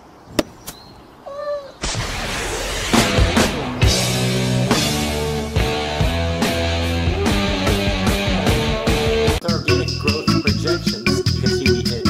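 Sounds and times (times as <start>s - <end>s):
loud burst of noise: 1.8s - 5.8s.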